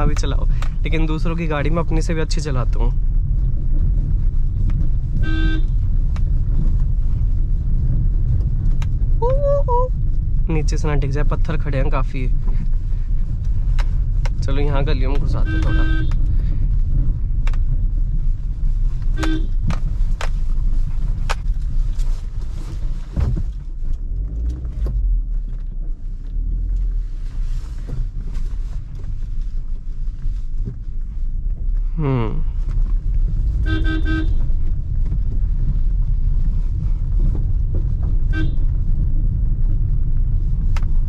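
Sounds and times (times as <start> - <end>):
car engine and road rumble: 0.0 - 41.0
car horn toots: 5.2 - 5.8, 15.2 - 16.3, 19.2 - 19.7, 33.6 - 34.5, 38.3 - 38.7.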